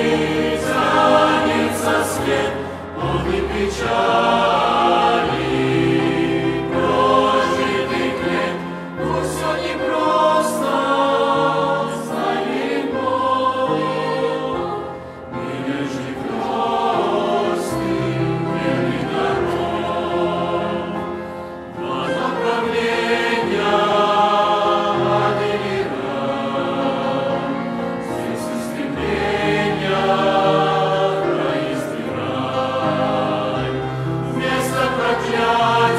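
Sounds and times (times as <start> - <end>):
choir singing a hymn: 0.0 - 35.9.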